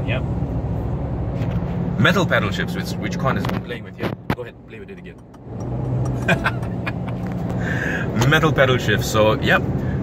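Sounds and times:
road noise from cabin: 0:00.0 - 0:10.0.

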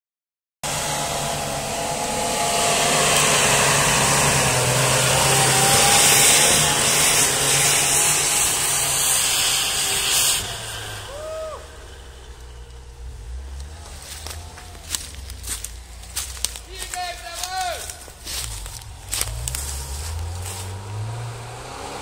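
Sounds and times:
off-road vehicle engine revving: 0:00.6 - 0:22.0.

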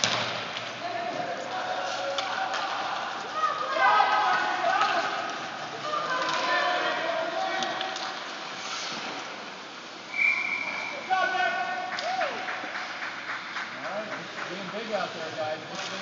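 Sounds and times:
voices shouting: 0:01.4 - 0:07.9
referee's whistle blast: 0:10.1 - 0:11.1.

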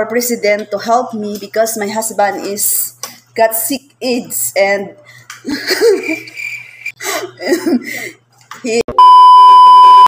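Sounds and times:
steady single-pitched beep tone: 0:09.0 - 0:10.0.

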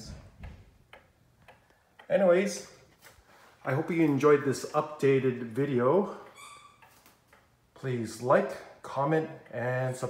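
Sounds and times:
pendulum clock ticking: 0:00.7 - 0:02.8, 0:04.1 - 0:10.0.

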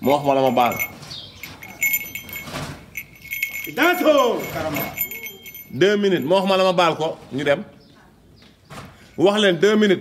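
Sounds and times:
metallic jingling: 0:00.0 - 0:07.0
man's voice: 0:03.6 - 0:07.6.

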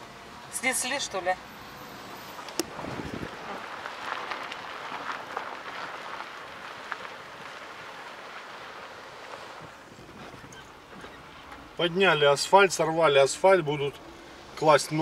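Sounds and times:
tyre and road noise: 0:00.0 - 0:15.0.

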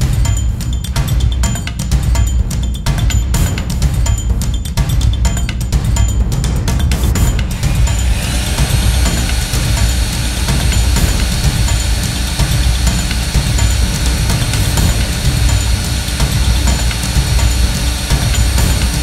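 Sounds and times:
cordless drill drilling metal: 0:07.5 - 0:19.0.

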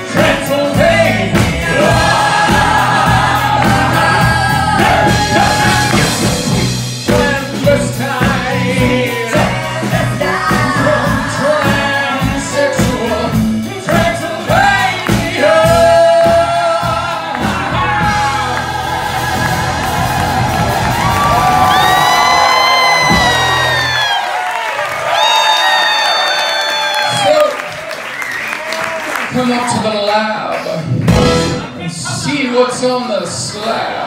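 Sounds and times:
person singing: 0:00.0 - 0:20.0
bass: 0:00.0 - 0:24.6, 0:29.3 - 0:33.6
drums: 0:00.0 - 0:29.8, 0:30.6 - 0:32.8.

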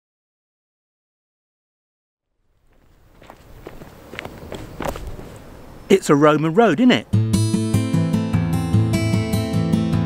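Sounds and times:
footsteps on gritty pavement: 0:02.6 - 0:06.9.

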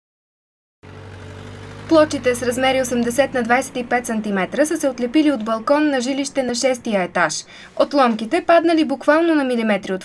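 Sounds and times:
faint engine-like drone: 0:00.8 - 0:07.8
low background hum: 0:00.9 - 0:10.0
person speaking: 0:01.9 - 0:10.0.

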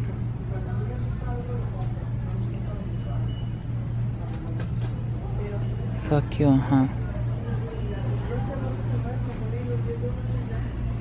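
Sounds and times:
faint voices talking: 0:00.0 - 0:11.0
steady low hum: 0:00.0 - 0:11.0.

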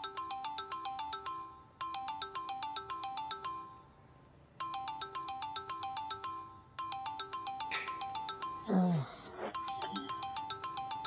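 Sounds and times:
smartphone ringtone melody: 0:00.0 - 0:04.0, 0:04.6 - 0:11.0.

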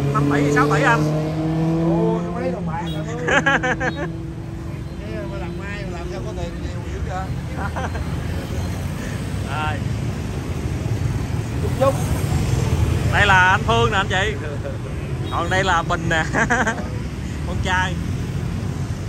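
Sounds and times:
motorbikes and cars passing: 0:00.0 - 0:19.0.

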